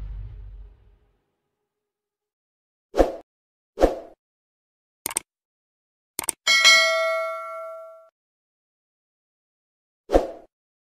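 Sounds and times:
mouse clicks: 0:05.1 - 0:05.3, 0:06.2 - 0:06.4
bright bell ding: 0:06.5 - 0:08.1.

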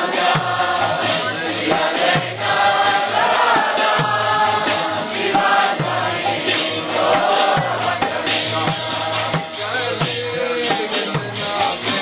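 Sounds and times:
person singing devotional song: 0:00.0 - 0:12.0
steady low drum beat: 0:00.0 - 0:12.0.

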